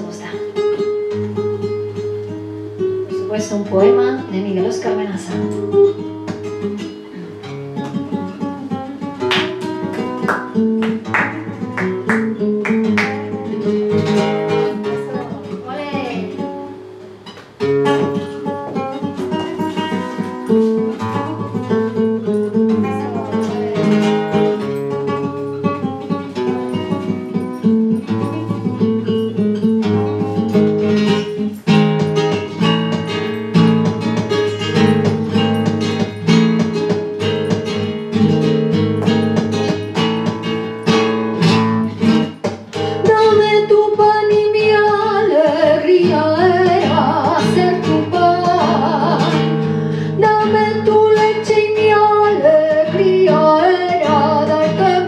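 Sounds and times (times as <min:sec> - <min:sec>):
flamenco guitar playing: 0:00.0 - 0:55.0.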